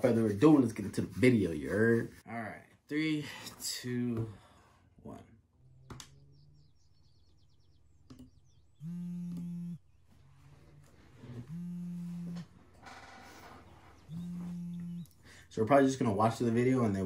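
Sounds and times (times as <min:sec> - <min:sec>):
low buzzing alarm: 0:05.5 - 0:15.4.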